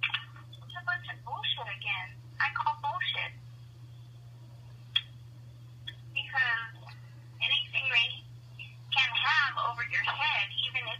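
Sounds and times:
steady low hum: 0.0s - 10.9s
person talking over telephone: 0.7s - 3.4s, 6.2s - 8.2s, 8.9s - 10.9s.

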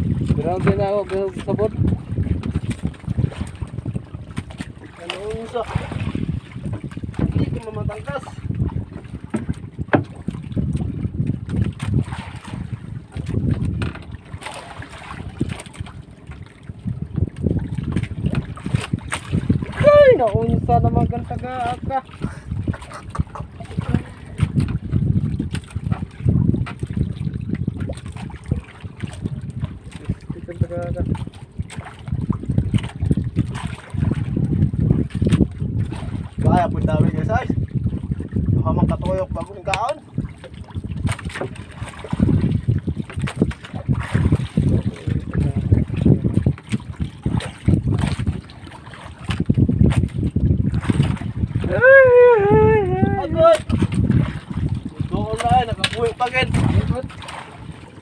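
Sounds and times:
wind rumbling on microphone: 0.0s - 58.0s.

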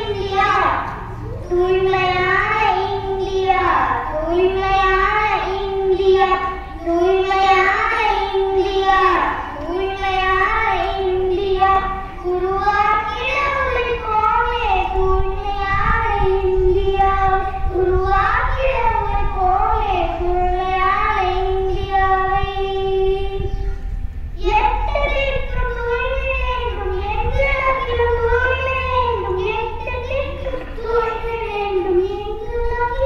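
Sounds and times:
boy singing into a microphone: 0.0s - 23.8s, 24.4s - 33.0s.

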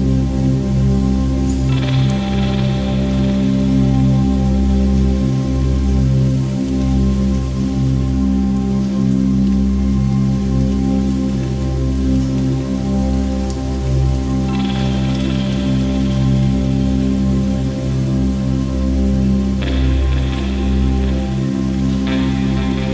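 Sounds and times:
chill electronic music: 0.0s - 5.6s, 14.2s - 22.9s.

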